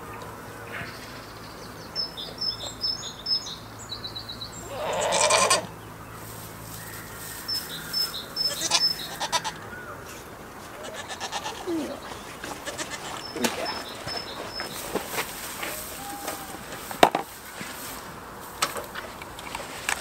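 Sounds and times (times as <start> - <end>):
small birds chirping: 0.0 - 16.2
goat bleating: 4.6 - 5.7, 8.4 - 9.6, 10.6 - 13.9, 15.8 - 16.8.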